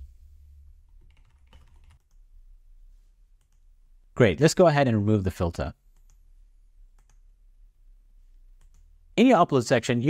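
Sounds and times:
typing on computer keyboard: 1.0s - 2.2s.

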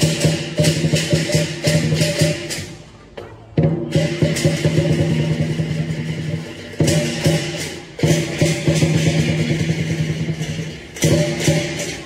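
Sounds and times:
drum beaten rapidly: 0.0s - 2.8s, 3.6s - 12.0s
cymbals clashing: 0.0s - 12.0s.

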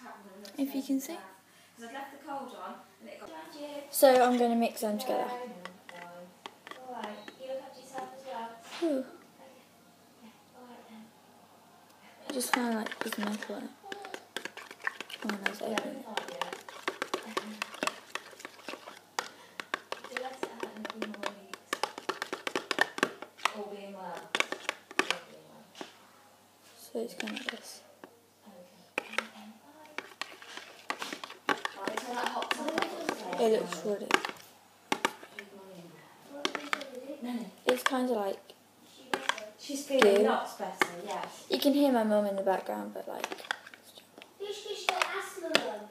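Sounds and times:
person speaking: 3.2s - 7.3s, 12.3s - 25.5s, 29.0s - 35.6s, 36.2s - 45.9s
metal spoon scraping a bowl: 4.1s - 8.1s, 12.3s - 25.9s, 27.1s - 27.8s, 29.0s - 35.5s, 36.4s - 37.0s, 39.1s - 41.8s, 43.2s - 44.0s
metal spoon scraping glass bowl: 12.3s - 22.8s, 27.1s - 27.8s.

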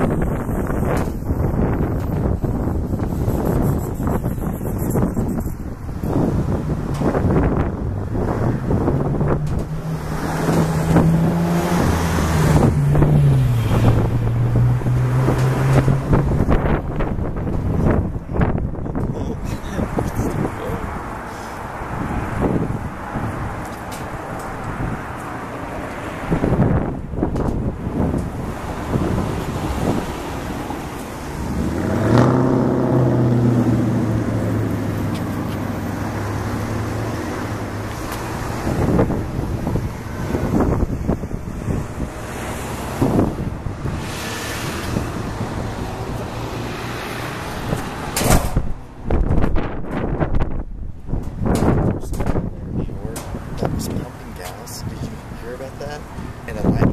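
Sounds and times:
vehicle engine passing: 0.0s - 50.6s
road traffic passing: 0.0s - 56.9s
wind on microphone: 0.0s - 56.9s.

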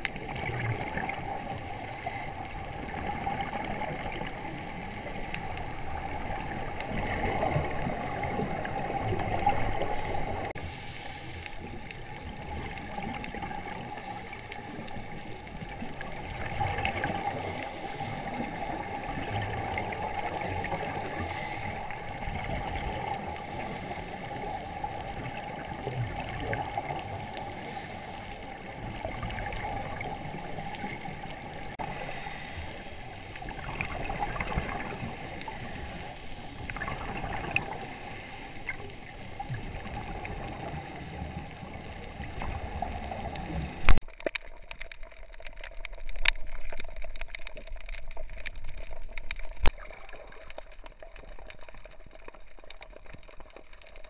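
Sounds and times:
underwater bubbles gurgling: 0.0s - 54.0s.

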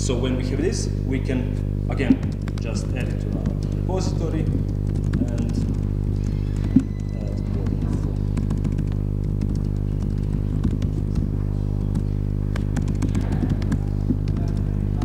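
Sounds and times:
low electrical hum: 0.0s - 15.0s
keyboard typing: 2.0s - 15.0s.

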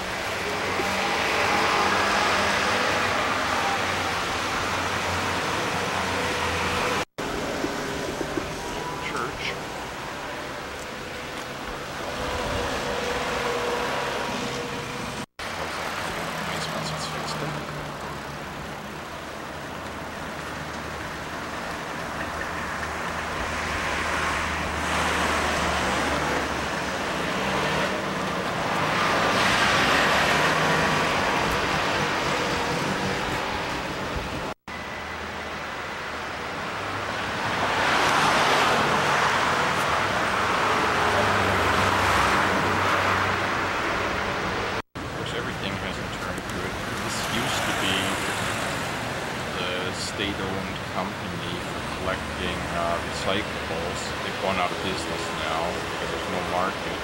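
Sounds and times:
cars passing by: 0.0s - 57.0s.

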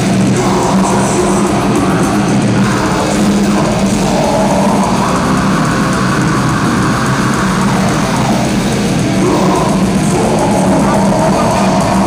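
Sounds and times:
distorted electric guitars: 0.0s - 12.0s
drums: 0.0s - 12.0s.

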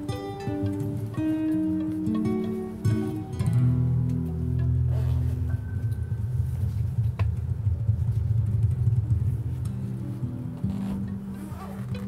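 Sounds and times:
acoustic guitar: 0.0s - 12.0s.

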